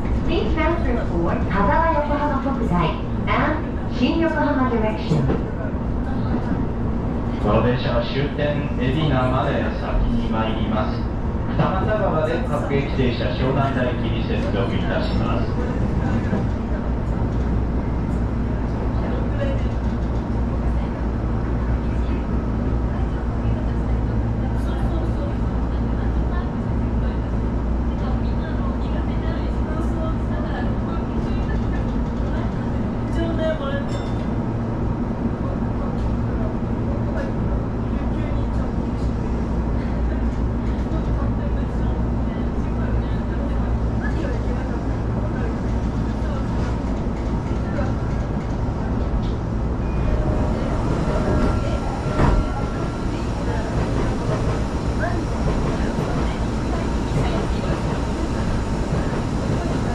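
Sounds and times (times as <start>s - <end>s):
train low hum: 0.0s - 59.9s.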